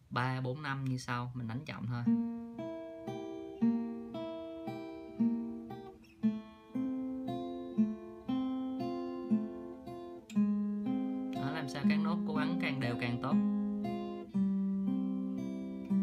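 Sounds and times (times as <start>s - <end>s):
fingerpicked acoustic guitar: 0.1s - 16.0s.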